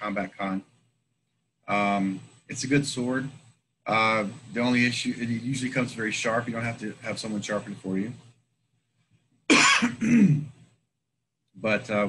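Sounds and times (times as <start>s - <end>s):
man clearing throat: 9.5s - 10.5s
man coughing: 9.5s - 10.5s.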